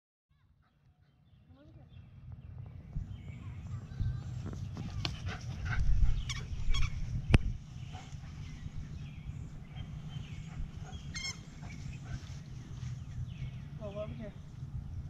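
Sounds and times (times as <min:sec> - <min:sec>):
wind rumble on microphone: 0:01.4 - 0:15.0
dogs giving short calls: 0:10.4 - 0:12.2.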